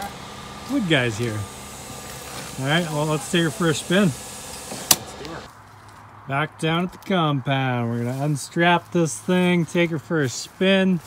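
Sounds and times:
sharp click: 4.5 - 5.4.

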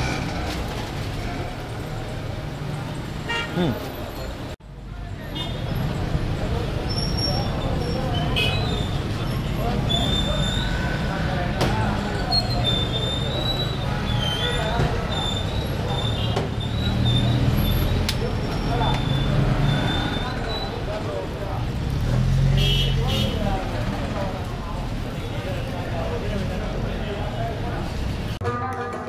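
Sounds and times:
motor traffic rumble: 0.0 - 28.4.

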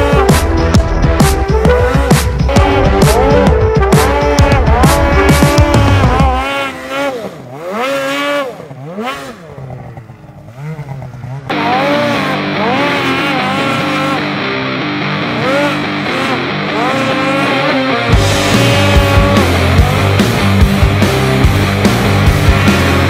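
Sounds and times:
background music: 0.0 - 7.0, 11.5 - 23.0
snowmobile engine revving: 0.0 - 23.0.

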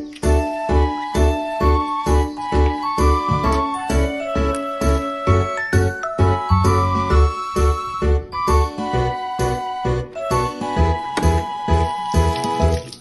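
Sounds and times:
background music with steady beat: 0.0 - 12.8.

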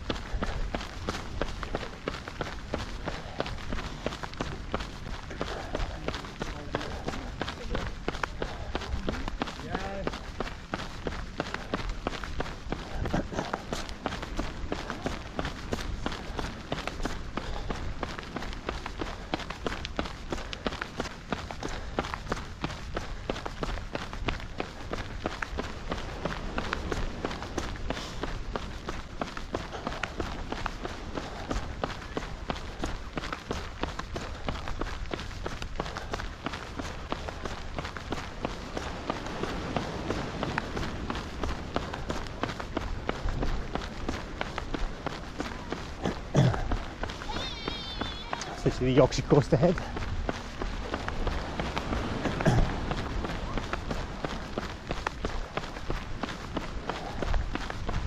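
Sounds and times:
running footsteps on asphalt: 0.0 - 58.0.

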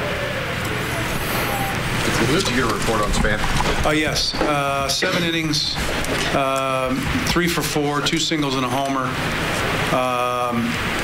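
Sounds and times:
faint voices: 0.0 - 9.2
room noise hiss and hum: 0.0 - 11.0.

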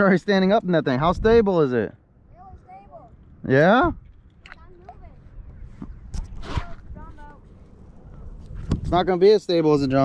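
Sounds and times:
low wind rumble on microphone: 1.0 - 1.6, 2.2 - 10.0.

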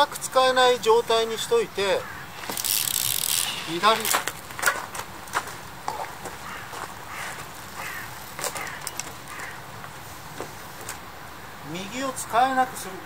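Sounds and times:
crow cawing: 2.0 - 2.5, 5.9 - 9.7
bicycle clicks and knocks: 2.4 - 6.3, 7.4 - 11.0.

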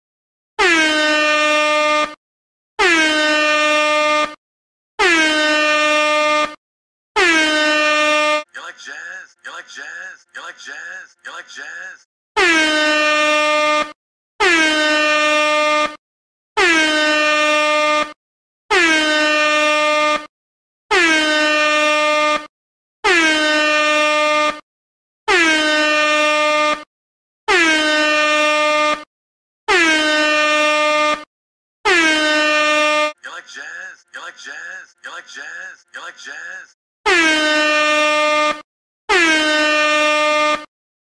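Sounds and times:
air horn blasts: 0.6 - 2.2, 2.8 - 4.4, 5.0 - 6.6, 7.2 - 8.5, 12.4 - 16.0, 16.6 - 20.3, 20.9 - 24.6, 25.3 - 26.9, 27.5 - 29.1, 29.7 - 33.2, 37.1 - 40.7.

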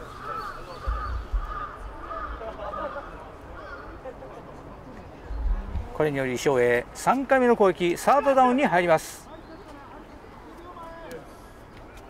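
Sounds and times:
crows cawing: 0.0 - 4.0
low thumps: 5.3 - 6.0.

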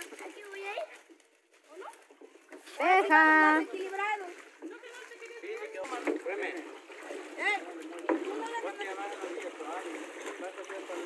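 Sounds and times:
water splashing around boat: 0.0 - 11.0.

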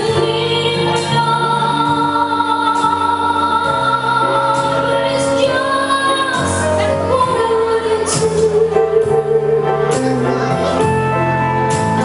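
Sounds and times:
live instrumental accompaniment: 0.0 - 12.0.

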